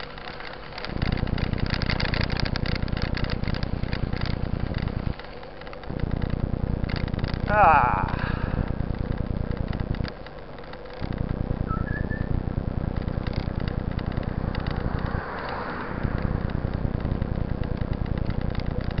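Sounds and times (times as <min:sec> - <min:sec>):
road vibration rumble: 0:00.0 - 0:19.0
wind buffeting microphone: 0:13.1 - 0:19.0.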